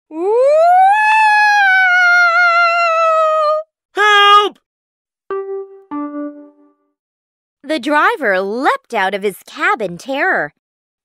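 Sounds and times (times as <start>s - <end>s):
person doing ghostly wail: 0.1s - 4.6s.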